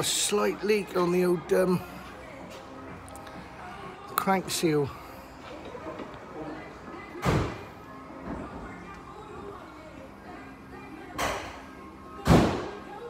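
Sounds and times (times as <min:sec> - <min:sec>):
faint background music: 0:00.0 - 0:13.0.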